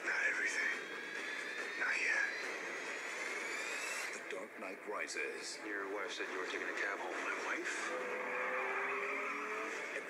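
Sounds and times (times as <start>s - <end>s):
steady noisy bed: 0.0s - 10.0s
vehicle engine whine: 0.2s - 4.4s, 5.6s - 10.0s.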